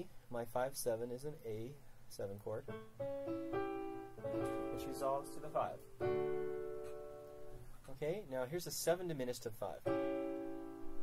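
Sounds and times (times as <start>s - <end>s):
held chord: 2.7s - 7.6s.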